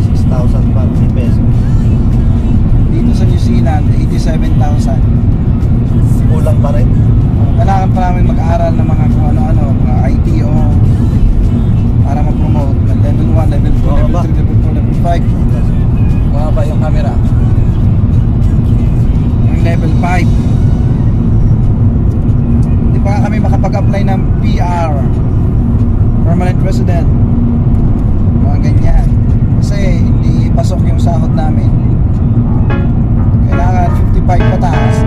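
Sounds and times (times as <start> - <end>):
road and engine rumble in car cabin: 0.0 - 35.0.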